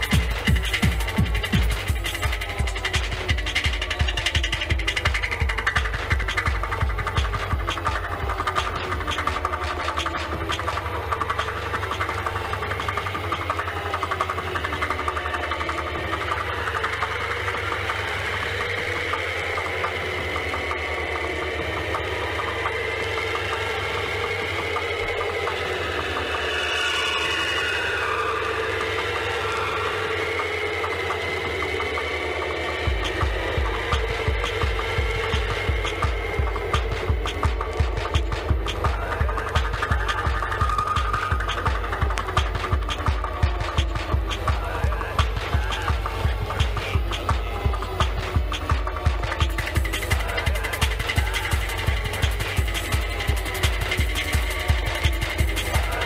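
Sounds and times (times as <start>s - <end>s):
kick drum: 0.0s - 9.2s, 32.9s - 56.0s
buzzing bass drone: 0.0s - 56.0s
hissing swell: 0.0s - 56.0s
layered synth textures: 0.0s - 56.0s.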